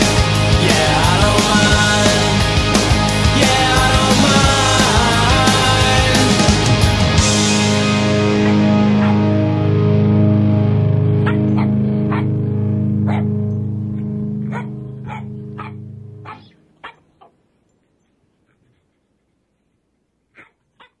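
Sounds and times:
rock song chord ringing: 0.0s - 16.4s
dog barking sharply: 8.4s - 9.3s, 11.2s - 12.3s, 13.1s - 13.4s, 14.5s - 17.1s.

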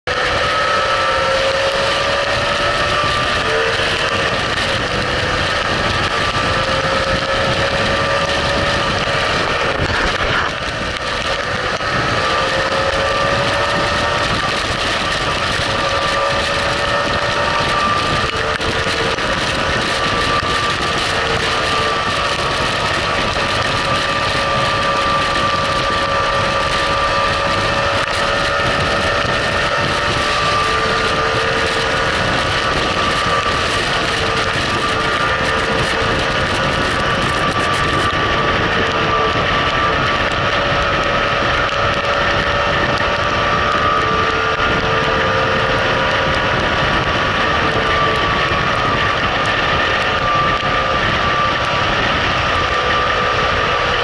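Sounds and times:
loud wind noise: 0.0s - 54.0s
motorcycle engine running: 0.0s - 54.0s
wet road noise: 0.0s - 54.0s.

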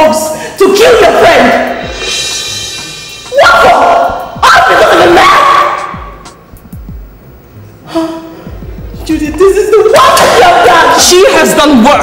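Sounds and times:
woman shouting loudly: 0.0s - 1.7s, 3.3s - 6.0s, 9.0s - 12.0s
background music: 0.0s - 12.0s.

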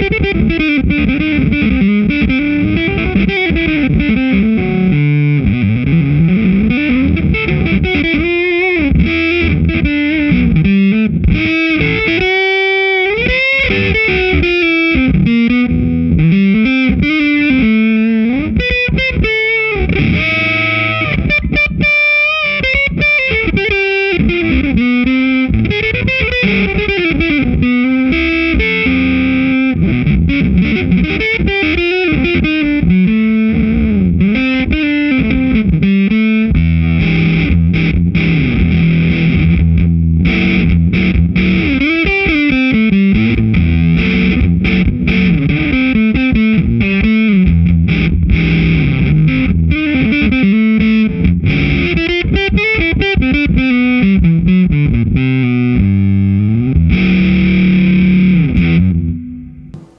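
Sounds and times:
fuzz electric guitar lead: 0.0s - 59.9s.

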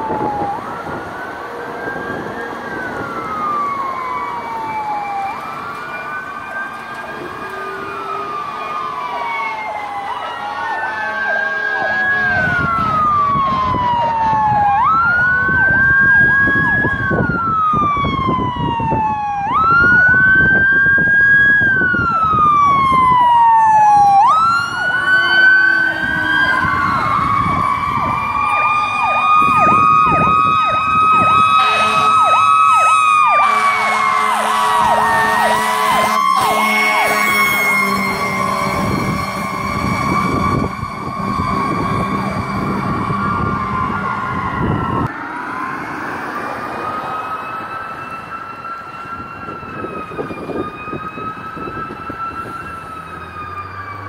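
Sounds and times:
electronic sirens wailing and yelping: 0.0s - 54.0s
air horn: 31.6s - 32.4s, 33.4s - 40.4s.

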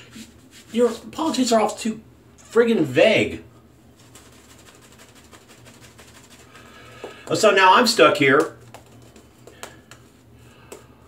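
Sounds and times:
shaving brush lathering: 4.0s - 7.4s.

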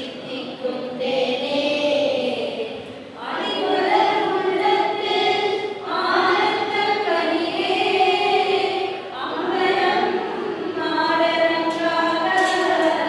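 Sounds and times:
children and women singing in unison: 0.0s - 13.0s.

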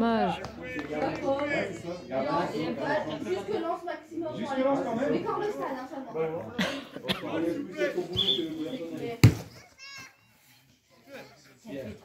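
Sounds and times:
sharp thump: 9.2s - 9.5s.

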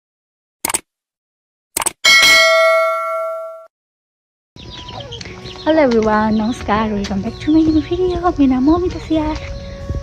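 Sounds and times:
notification bell ding: 2.1s - 3.7s.

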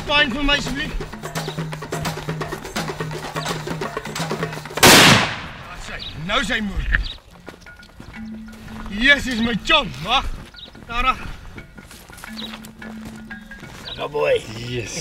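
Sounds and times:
background music with ticking percussion: 0.0s - 15.0s
rifle shot with echo: 4.8s - 5.8s.

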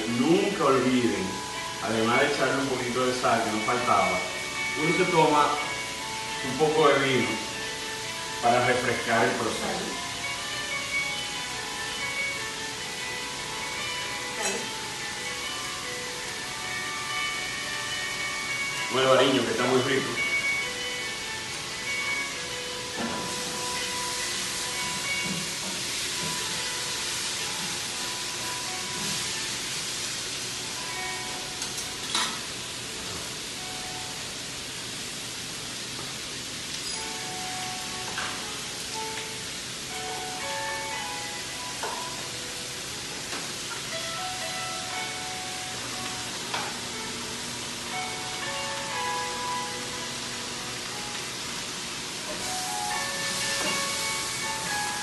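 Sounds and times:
vegetables sizzling in a wok: 0.0s - 55.0s.

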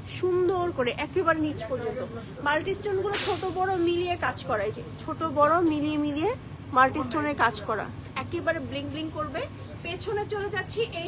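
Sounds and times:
woman's voice: 0.0s - 11.0s.

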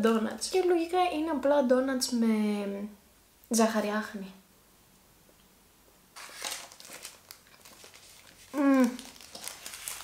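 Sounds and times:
plastic snack wrapper crinkling: 6.2s - 10.0s.

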